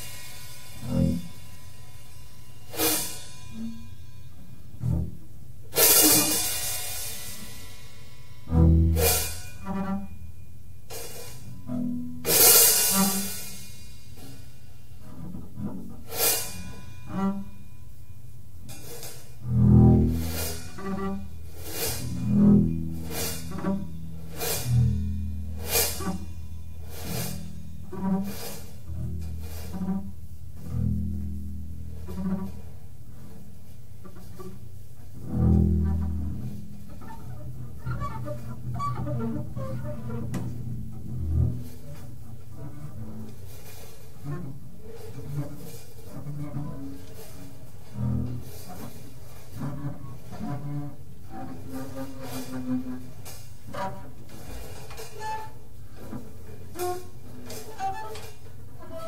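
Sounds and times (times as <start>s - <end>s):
drum hits and cymbal strikes: 0.0s - 4.9s, 5.7s - 10.2s, 10.8s - 11.6s, 12.2s - 14.8s, 16.0s - 17.1s, 18.6s - 19.4s, 20.1s - 29.8s
bowed upright bass: 0.0s - 7.6s, 8.2s - 13.6s, 15.0s - 17.6s, 18.6s - 59.0s.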